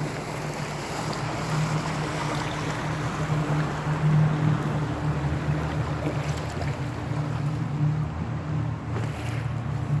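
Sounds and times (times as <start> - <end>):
boat motor humming: 0.0 - 10.0
water noise: 0.0 - 10.0.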